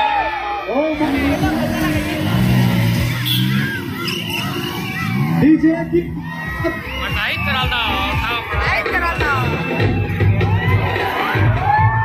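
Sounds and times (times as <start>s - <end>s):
crowd cheering and shouting: 0.0s - 12.0s
music with pulsing bass: 1.0s - 12.0s.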